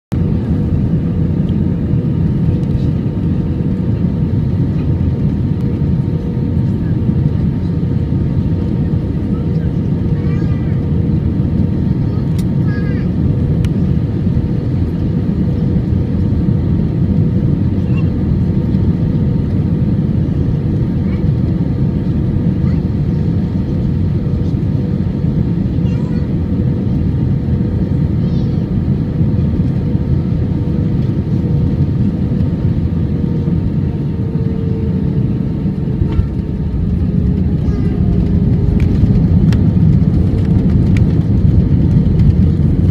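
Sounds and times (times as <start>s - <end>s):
aircraft cabin engine and airflow rush: 0.1s - 42.9s
constant hum: 0.1s - 42.9s.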